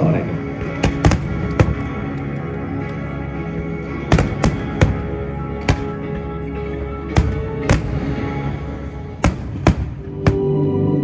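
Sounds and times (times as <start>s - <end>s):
music with long held tones: 0.0s - 11.0s
firework bangs: 0.7s - 2.0s, 4.1s - 6.0s, 7.1s - 8.4s, 9.2s - 10.5s.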